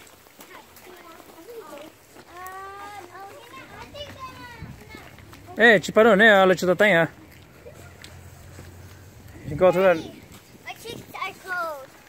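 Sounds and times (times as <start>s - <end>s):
children calling: 0.3s - 12.0s.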